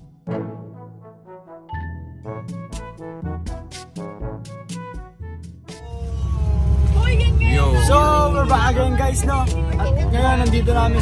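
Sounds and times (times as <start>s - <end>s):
bus engine and road noise: 5.7s - 11.0s
people's voices: 5.8s - 11.0s.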